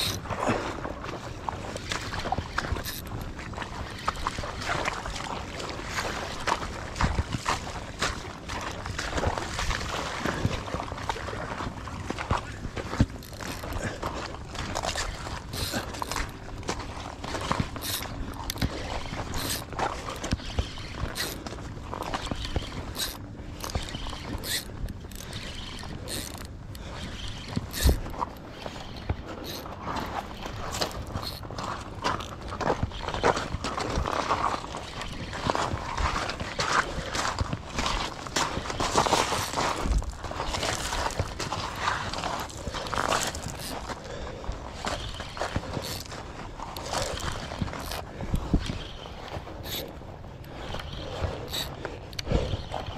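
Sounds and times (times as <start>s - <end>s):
fishing reel whirring and clicking: 0.0s - 0.3s, 1.4s - 8.1s, 12.9s - 44.1s, 44.7s - 52.9s.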